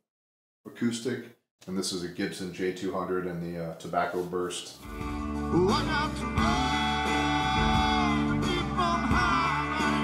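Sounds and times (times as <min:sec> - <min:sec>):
rock band playing live: 0:04.8 - 0:10.0
acoustic guitar strumming: 0:04.9 - 0:10.0.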